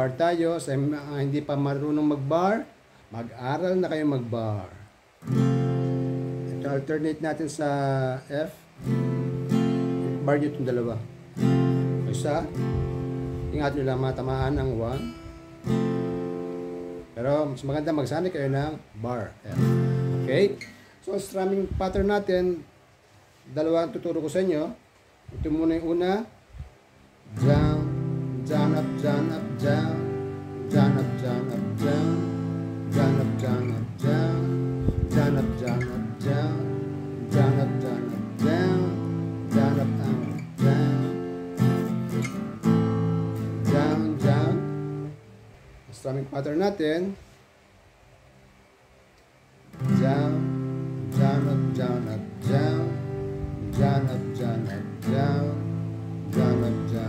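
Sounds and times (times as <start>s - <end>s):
acoustic guitar chord strum: 5.2s - 18.8s, 19.4s - 21.3s, 27.2s - 45.6s, 49.7s - 57.0s
last notes dying away: 27.3s - 45.2s.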